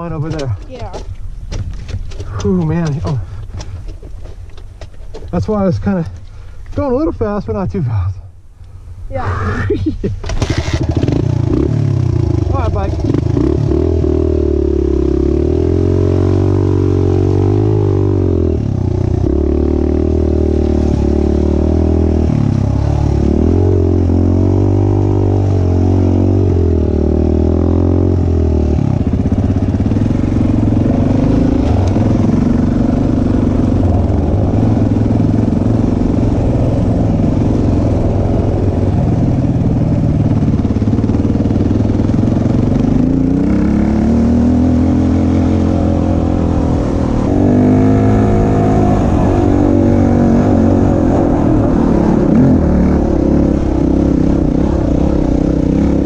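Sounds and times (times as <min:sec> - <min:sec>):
motorcycle engine revving: 0:10.2 - 0:56.0.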